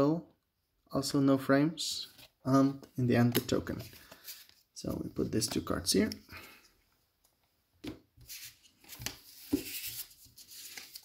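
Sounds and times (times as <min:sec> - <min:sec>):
cards tapping and rustling: 0:02.8 - 0:06.2, 0:07.8 - 0:11.0.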